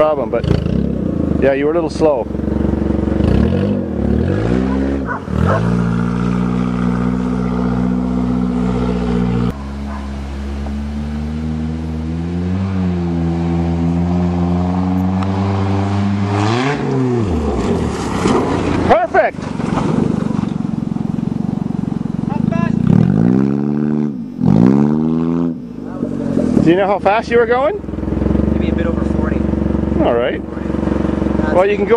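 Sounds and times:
car engine revving: 0.0s - 31.9s.

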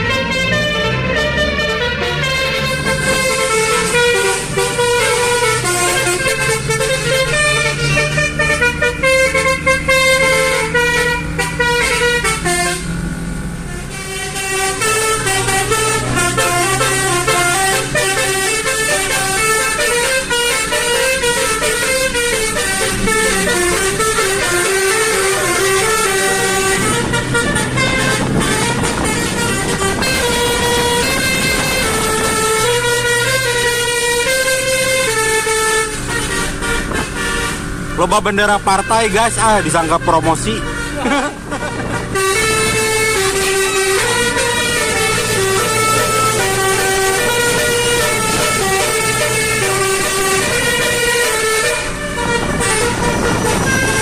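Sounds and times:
multi-tone air horn melody: 0.0s - 54.0s.

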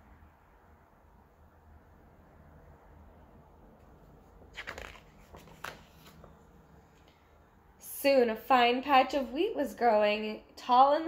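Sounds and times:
book pages turning: 3.8s - 7.2s.

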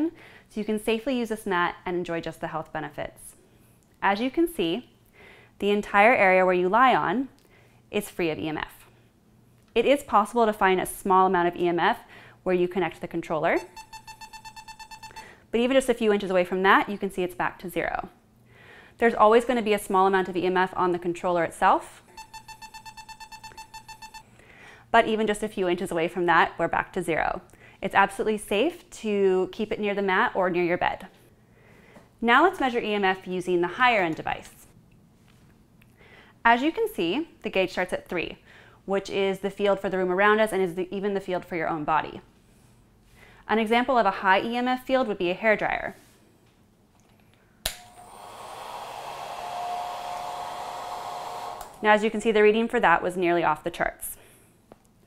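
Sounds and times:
meter alarm beeping rapidly: 13.6s - 15.4s, 22.1s - 24.3s
hair dryer switch click: 47.6s - 48.2s, 51.5s - 51.8s
hair dryer blowing: 47.7s - 51.9s.

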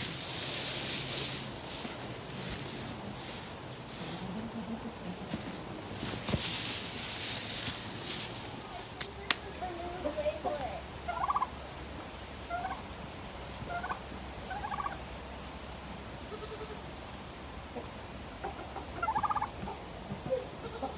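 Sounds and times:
turkey gobbling: 10.4s - 11.6s, 12.4s - 12.9s, 13.6s - 15.0s, 17.7s - 20.9s
short turkey calls: 11.1s - 11.6s, 12.5s - 12.8s, 13.7s - 15.0s, 18.4s - 19.5s.

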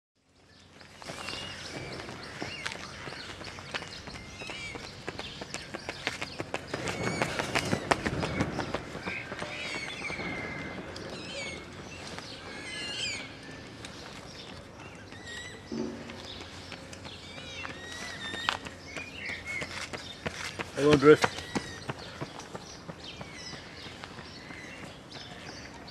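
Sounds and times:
small birds chirping: 0.2s - 25.9s
footsteps on gravel: 0.8s - 25.9s.

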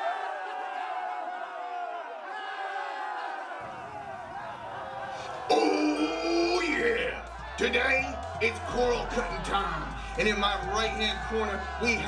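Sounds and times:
arena crowd voices: 0.0s - 12.0s
loud music: 3.7s - 12.0s.

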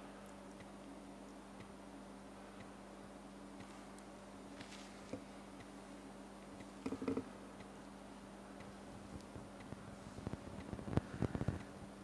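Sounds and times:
faint ticks: 8.6s - 11.8s.

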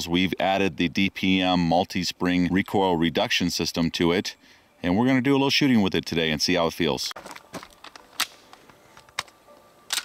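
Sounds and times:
pistol slide racked: 7.3s - 10.0s
pistol metallic clicks: 7.7s - 10.0s.

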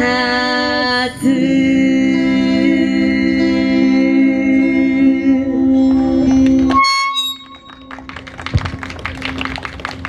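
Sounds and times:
audience clapping: 7.4s - 10.0s.

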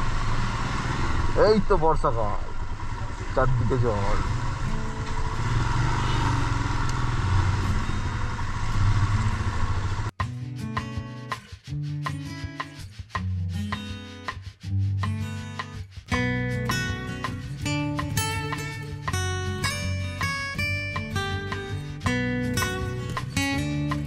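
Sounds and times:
motorcycle engine running: 0.0s - 10.2s
road and wind noise: 0.0s - 10.2s
acoustic guitar music: 3.3s - 24.0s.

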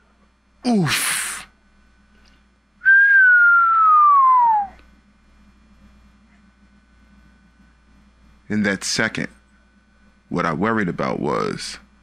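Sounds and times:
person whistling falling note: 2.8s - 4.8s.

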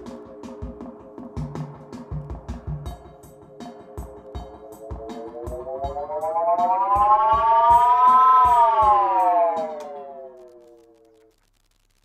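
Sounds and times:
drum machine beat thumping: 0.0s - 10.0s
siren-like feedback tone: 4.7s - 11.3s.

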